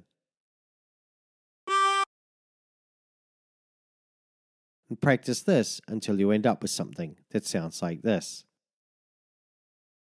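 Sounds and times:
short harmonica note: 1.7s - 2.1s.

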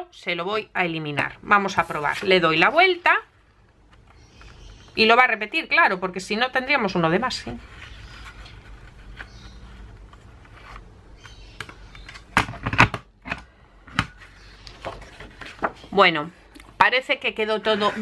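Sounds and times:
paper handling: 14.2s - 16.0s.

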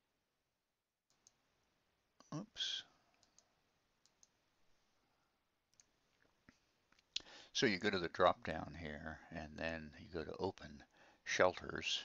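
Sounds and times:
computer mouse clicks: 1.1s - 1.4s, 3.1s - 4.4s.

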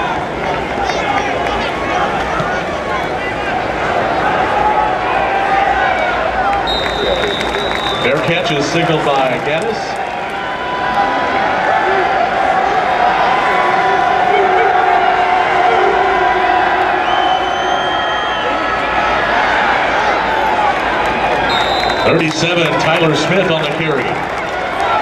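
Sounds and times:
stadium crowd cheering: 0.0s - 25.0s.

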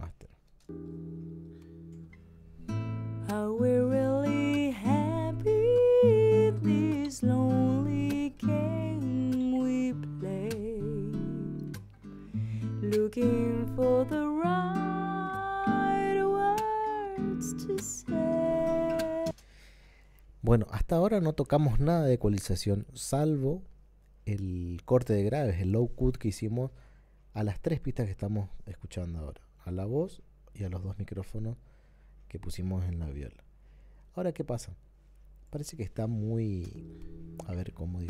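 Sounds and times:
acoustic guitar: 0.6s - 20.1s, 36.4s - 38.0s
person singing: 3.3s - 11.8s, 12.8s - 19.4s.

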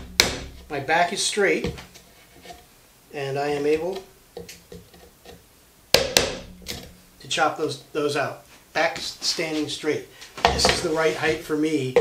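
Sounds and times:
mallet striking chisel: 0.0s - 0.7s, 6.0s - 6.9s.

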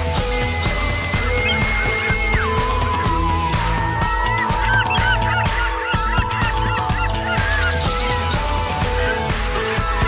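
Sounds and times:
background music: 0.0s - 10.0s
hooked bird calls: 1.0s - 10.0s.

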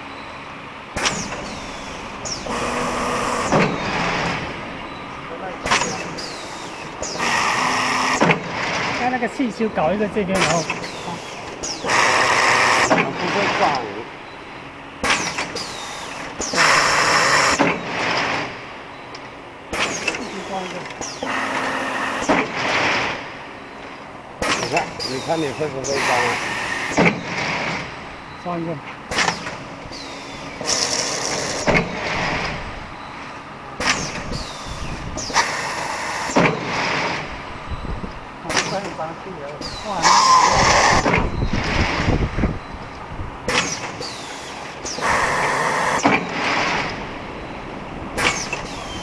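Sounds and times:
printing machine running: 0.9s - 14.2s, 15.0s - 18.7s, 19.8s - 23.6s, 24.4s - 32.8s.

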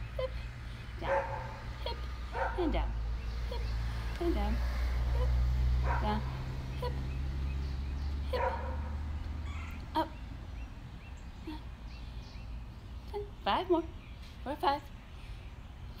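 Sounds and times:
low steady hum: 0.0s - 16.0s
dog barking: 1.0s - 1.6s, 2.3s - 2.7s, 5.1s - 6.4s, 8.3s - 8.9s.

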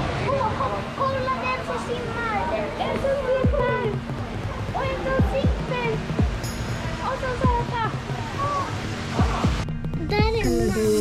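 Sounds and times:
voices talking over one another: 0.4s - 11.0s.

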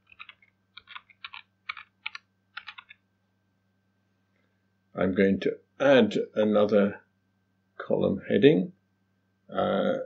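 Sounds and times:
typing on computer keyboard: 0.0s - 3.0s
faint low hum: 0.0s - 10.0s.

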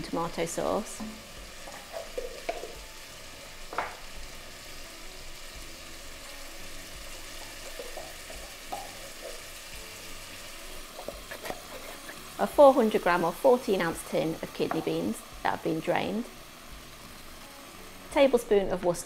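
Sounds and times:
food sizzling in a pot: 0.0s - 19.0s
spoon scraping tins: 11.0s - 12.2s.

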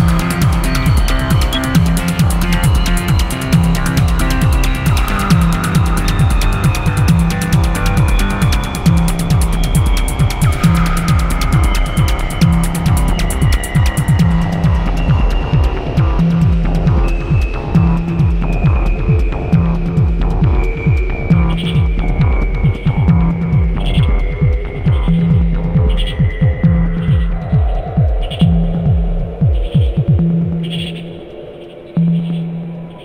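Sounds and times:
sustained low drone: 0.0s - 29.6s
throbbing synth bass pulse: 0.0s - 31.0s.

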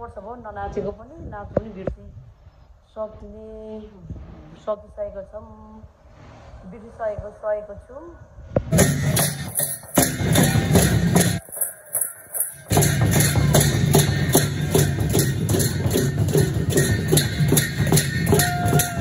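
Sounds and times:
dhol drum beating: 8.7s - 19.0s
hand cymbals beating: 8.8s - 19.0s.

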